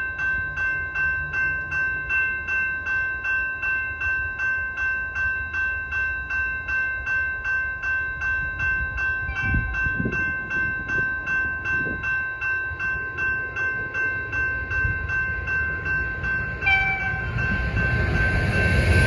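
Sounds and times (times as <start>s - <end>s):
level-crossing bell ringing: 0.0s - 19.0s
train rumble: 0.0s - 19.0s.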